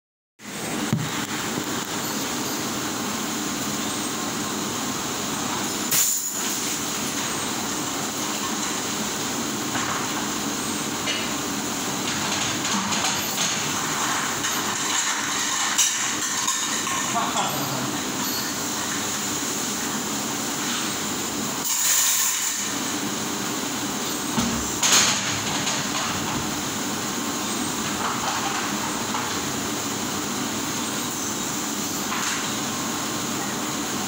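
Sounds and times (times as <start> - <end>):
dishwasher running: 0.4 - 34.0
dish racks and crockery clattering: 12.0 - 19.0, 24.4 - 26.7, 27.8 - 29.5.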